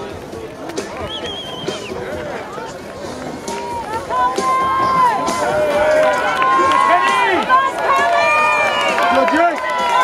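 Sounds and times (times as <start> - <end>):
spectators shouting encouragement: 3.4 - 10.0.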